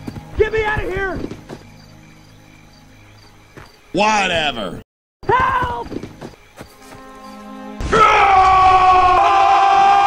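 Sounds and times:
cartoon characters screaming: 7.9 - 10.0.

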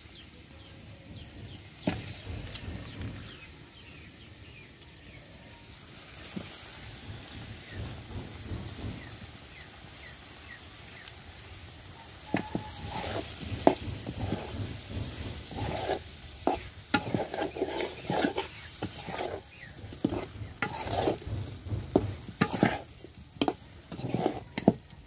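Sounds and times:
meat frying over fire: 0.0 - 25.0
spatula striking pan: 12.3 - 24.9.

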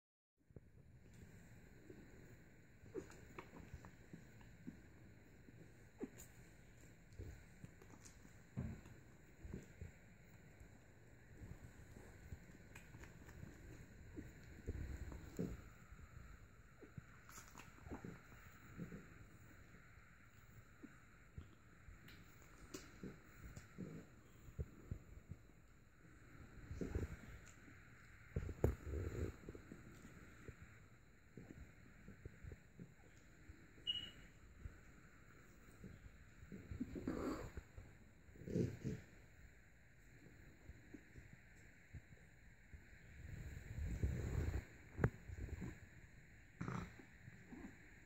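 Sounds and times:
puppies rustling on blanket: 1.0 - 20.7.

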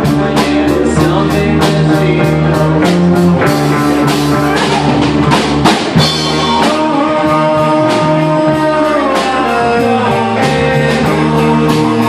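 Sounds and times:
drum kit: 0.0 - 12.0
electric bass: 0.0 - 12.0
electric guitars: 0.0 - 12.0.

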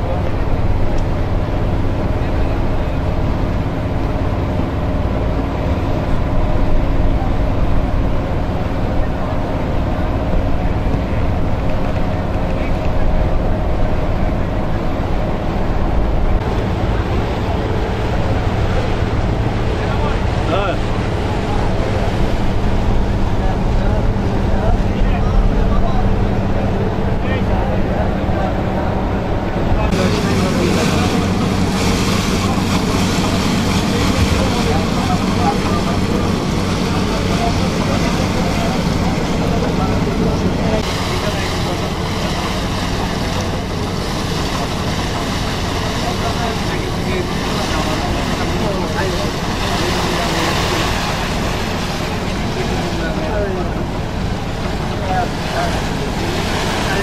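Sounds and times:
boat engine running: 0.0 - 57.0
water noise: 0.0 - 57.0
wind: 0.0 - 57.0.

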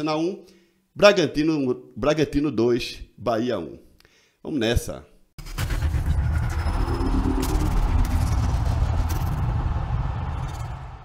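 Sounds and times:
bass-heavy intro music: 5.4 - 11.0
sharp sound effect hits: 5.4 - 11.0.

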